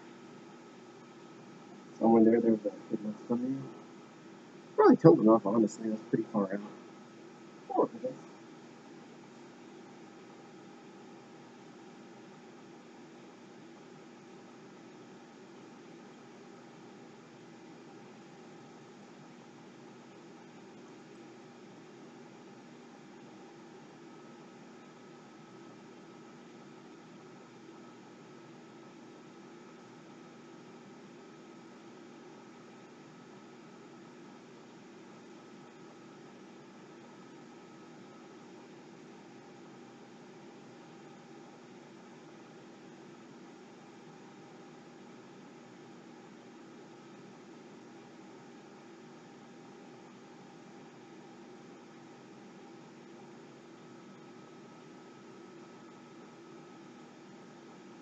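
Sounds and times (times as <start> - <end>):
faint steady hum tones: 0.0 - 58.0
low hiss of recording noise: 0.0 - 58.0.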